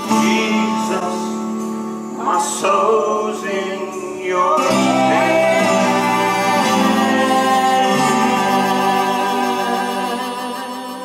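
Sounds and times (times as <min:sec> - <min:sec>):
acoustic guitar: 0:00.0 - 0:11.0
vocal trio singing in harmony: 0:00.0 - 0:11.0.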